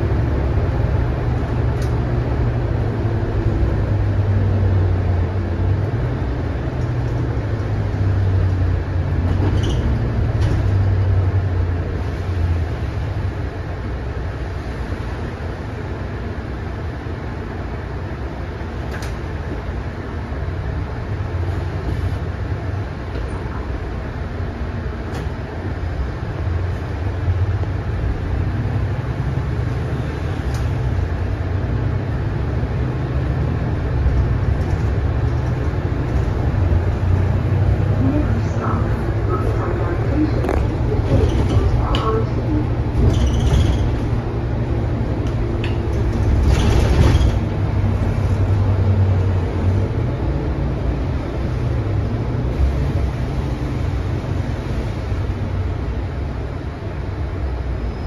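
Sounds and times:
bus diesel engine drone: 0.0s - 58.0s
road noise: 0.0s - 58.0s
sharp clicks from bus body: 1.4s - 2.2s, 6.7s - 7.8s, 9.2s - 11.0s, 18.8s - 19.6s, 25.0s - 25.4s, 30.3s - 31.0s, 34.0s - 37.0s, 40.4s - 42.2s, 42.9s - 44.2s, 45.2s - 48.6s.

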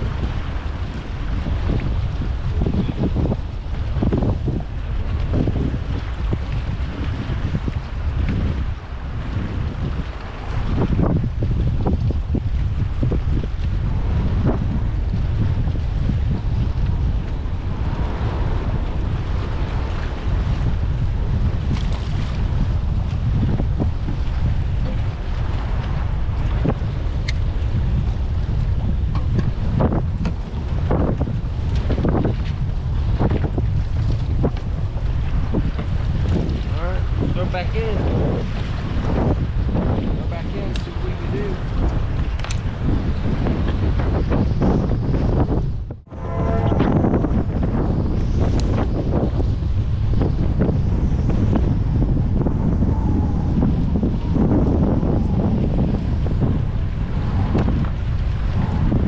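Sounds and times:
strong wind buffeting microphone: 0.0s - 59.0s
waves slapping kayak hull: 0.0s - 59.0s.

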